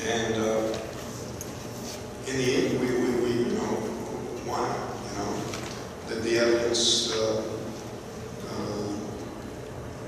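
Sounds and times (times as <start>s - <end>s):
large hall room tone: 0.0s - 10.0s.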